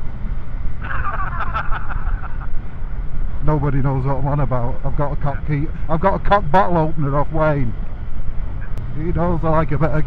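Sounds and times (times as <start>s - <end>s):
motorcycle engine and road rumble: 0.0s - 10.0s.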